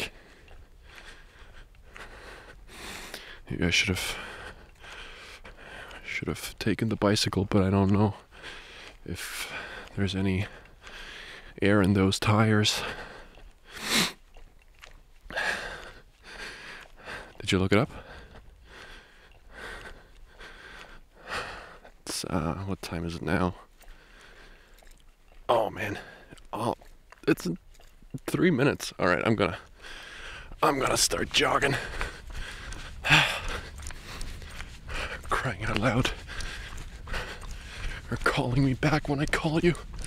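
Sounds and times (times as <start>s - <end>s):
man breathing: 0.0s - 3.5s, 4.1s - 6.0s, 8.2s - 11.6s, 12.8s - 14.1s, 15.3s - 22.0s, 23.7s - 24.9s, 29.6s - 30.6s, 31.6s - 38.2s.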